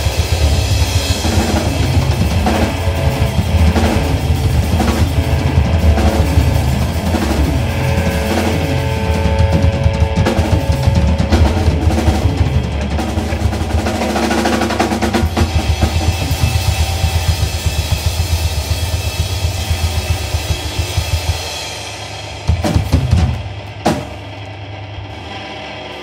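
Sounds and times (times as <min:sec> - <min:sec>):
drum rolls: 0:00.0 - 0:24.5
guitar and bass: 0:00.0 - 0:26.0.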